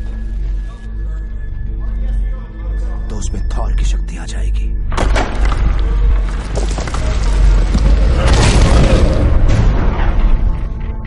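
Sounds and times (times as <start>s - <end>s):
deep rumble: 0.0s - 11.0s
deep boom with rushing noise: 7.3s - 10.8s.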